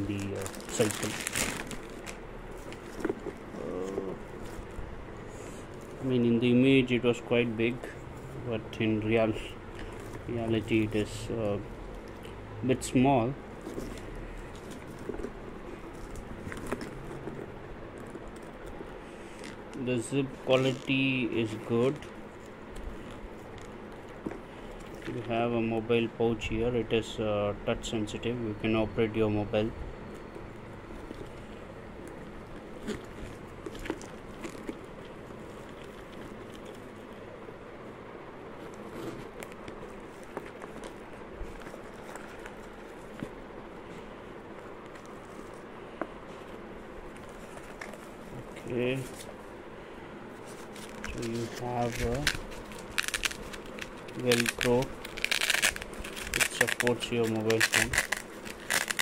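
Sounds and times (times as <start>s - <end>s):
bicycle frame bag clicks and rustles: 0.0s - 4.7s, 50.4s - 59.0s
bag clicks and rustles: 0.0s - 4.8s, 13.5s - 25.3s, 30.0s - 37.4s, 38.5s - 49.6s, 50.2s - 59.0s
steady background hiss: 0.0s - 59.0s.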